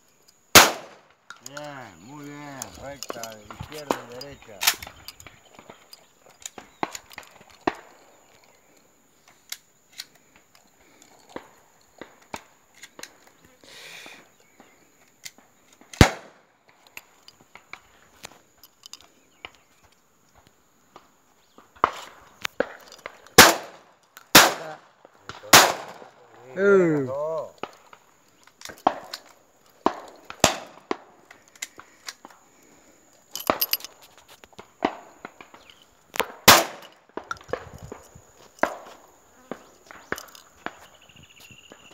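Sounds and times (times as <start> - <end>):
shotgun shots: 0.5 - 1.1, 16.0 - 16.4, 23.4 - 26.2, 29.8 - 31.0, 36.2 - 36.9
faint distant shots: 23.4 - 26.4.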